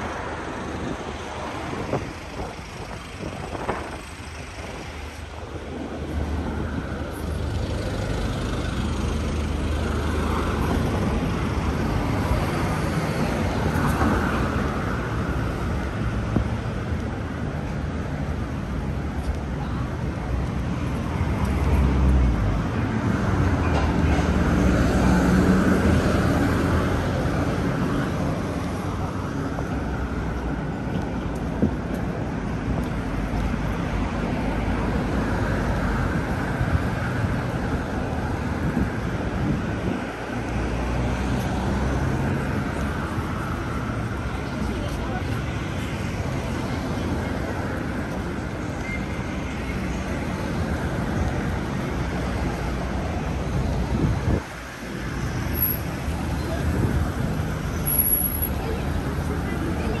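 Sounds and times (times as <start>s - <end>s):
low traffic rumble: 0.0s - 60.0s
traffic passing: 0.0s - 60.0s.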